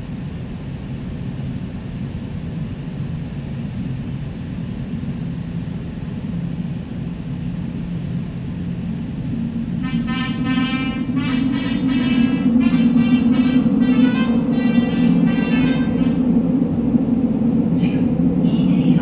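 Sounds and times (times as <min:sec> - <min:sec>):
subway train rumbling in tunnel: 0:00.0 - 0:19.0.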